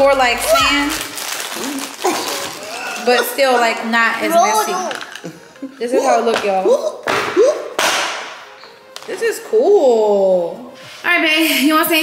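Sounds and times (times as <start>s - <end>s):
paper bag rustling: 0.0s - 5.2s.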